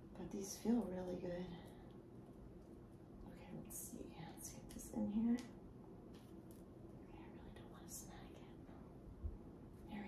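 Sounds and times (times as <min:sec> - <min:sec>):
woman whispering: 0:03.2 - 0:05.4, 0:07.0 - 0:08.8.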